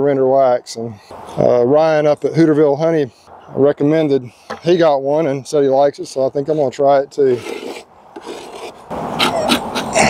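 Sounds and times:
metal tool scraping wax off wood: 0:07.3 - 0:09.3.

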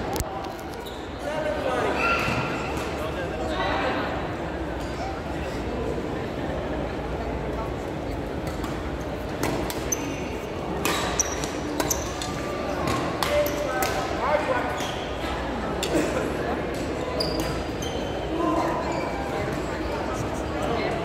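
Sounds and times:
sneaker squeaks on court: 0:10.9 - 0:13.6, 0:17.0 - 0:19.6.

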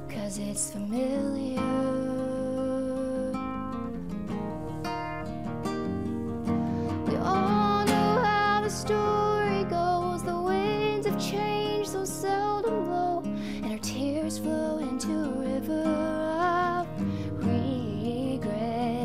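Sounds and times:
acoustic guitar: 0:00.0 - 0:19.0
woman singing long notes: 0:07.1 - 0:19.0.

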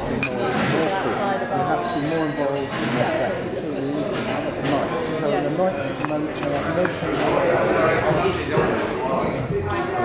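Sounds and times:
overlapping conversation: 0:04.5 - 0:10.0.

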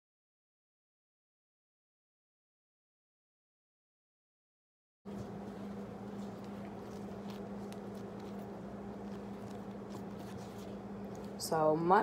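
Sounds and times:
hands kneading dough: 0:05.1 - 0:12.0
steady low hum: 0:05.1 - 0:12.0.

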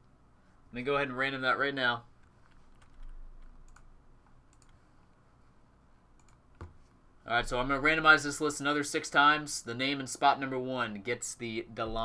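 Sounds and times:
computer keyboard clicks: 0:02.5 - 0:03.9, 0:04.5 - 0:04.8, 0:06.2 - 0:06.7.

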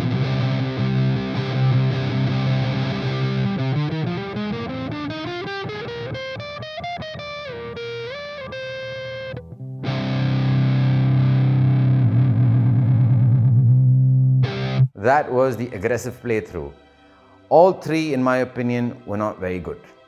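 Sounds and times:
distorted electric guitar lead: 0:00.0 - 0:15.0.

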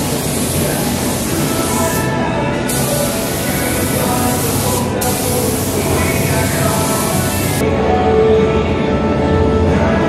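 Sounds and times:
air spray gun hissing: 0:00.0 - 0:07.6.

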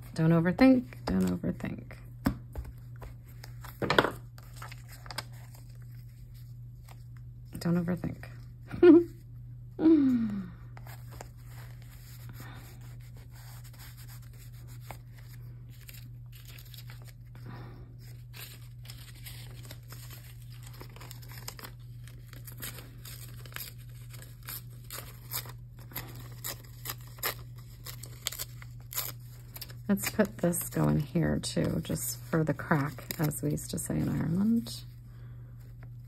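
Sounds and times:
steady low hum: 0:00.0 - 0:36.0
paper tearing and crinkling: 0:03.4 - 0:07.1, 0:10.8 - 0:17.4, 0:18.0 - 0:30.8, 0:31.4 - 0:34.7
woman humming: 0:08.7 - 0:09.2, 0:09.8 - 0:10.6
woman laughing: 0:08.7 - 0:09.2.

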